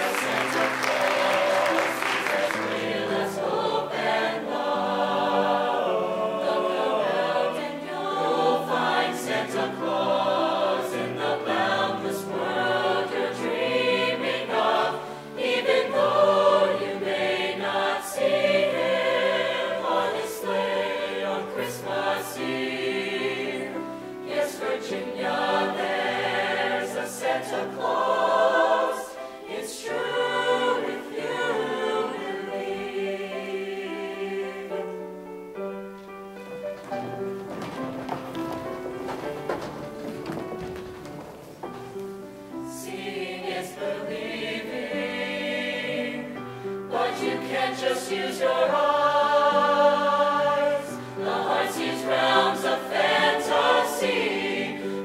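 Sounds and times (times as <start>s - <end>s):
mixed choir singing: 0.0s - 35.8s, 36.5s - 55.0s.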